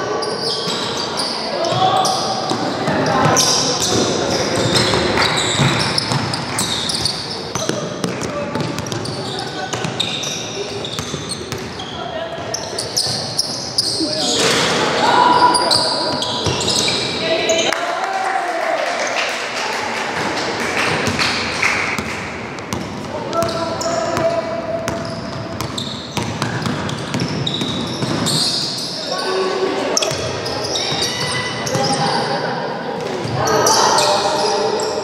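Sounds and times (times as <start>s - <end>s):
players calling out: 0.0s - 17.8s
sneakers squeaking on wooden floor: 0.1s - 17.7s, 22.7s - 32.3s
basketball bouncing: 2.5s - 9.1s, 22.0s - 23.6s, 24.9s - 28.3s.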